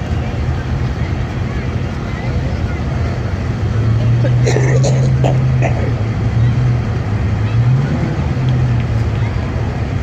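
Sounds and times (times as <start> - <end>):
vehicle engines droning: 0.0 - 10.0.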